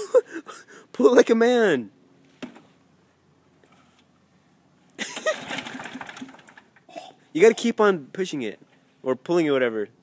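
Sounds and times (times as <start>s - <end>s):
lawn mower engine turning over: 5.0s - 6.9s.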